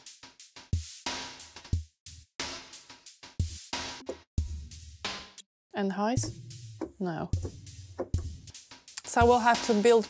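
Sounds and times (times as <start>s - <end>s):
drum machine kick: 3.4s - 5.3s, 6.2s - 10.0s.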